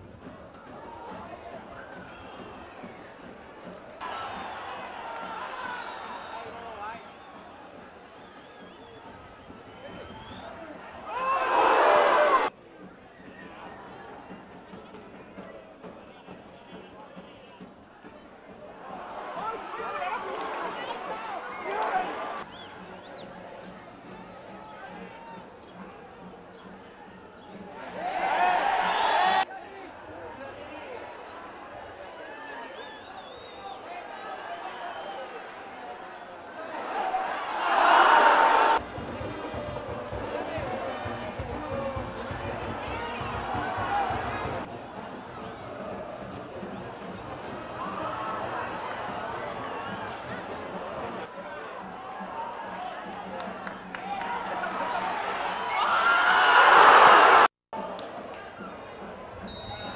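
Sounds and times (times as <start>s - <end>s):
stadium crowd noise: 0.0s - 59.9s
crowd shouting: 4.0s - 9.0s, 9.7s - 12.5s, 18.8s - 22.6s, 27.6s - 58.8s.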